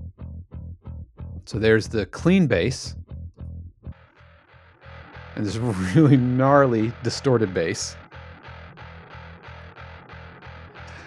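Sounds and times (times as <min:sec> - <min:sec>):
distorted bass repeated notes: 0:00.0 - 0:11.0.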